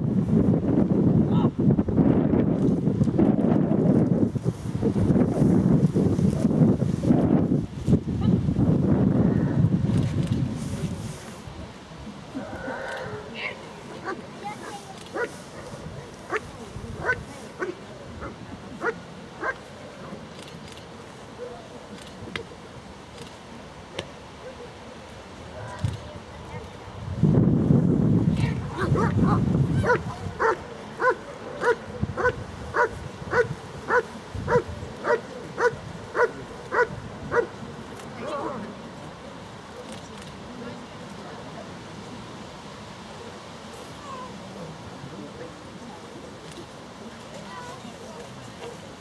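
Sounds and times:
dog barking: 17.0 - 17.7, 29.8 - 37.5.

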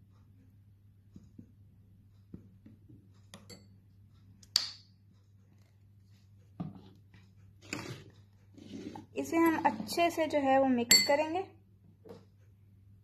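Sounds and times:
metal spatula clinking glass bowl: 10.9 - 11.3.

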